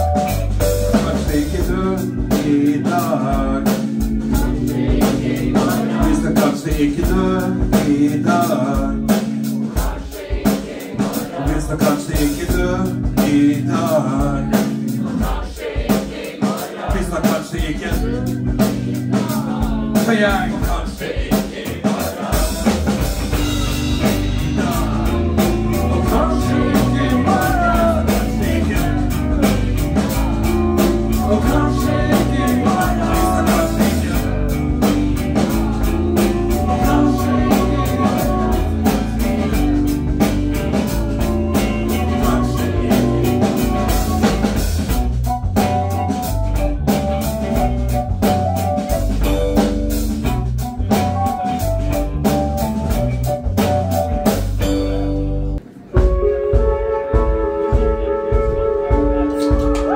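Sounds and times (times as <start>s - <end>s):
live rock band playing: 0.0s - 59.9s
sustained guitar notes ringing: 54.6s - 56.3s.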